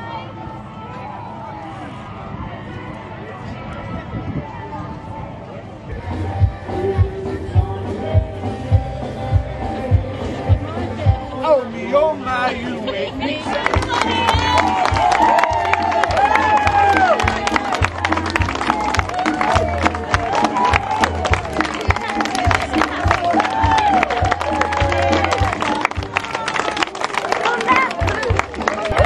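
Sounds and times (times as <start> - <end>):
music with low beat: 5.9 - 11.4, 13.7 - 26.2
crowd clapping: 13.5 - 29.0.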